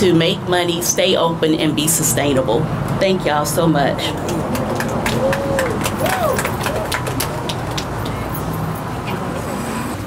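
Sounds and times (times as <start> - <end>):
road traffic rumble: 0.0 - 10.0
faint scattered applause: 4.2 - 8.4.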